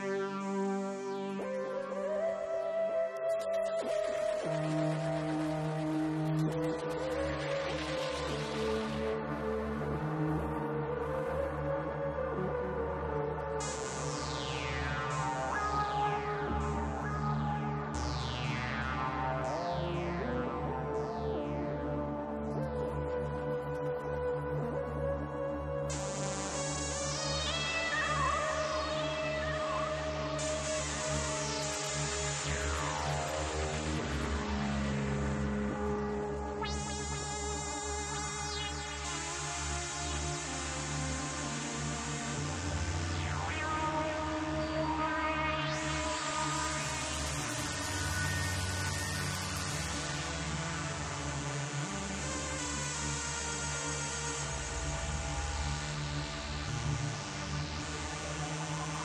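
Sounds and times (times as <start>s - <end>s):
electronic synthesizer drone: 0.0s - 59.0s.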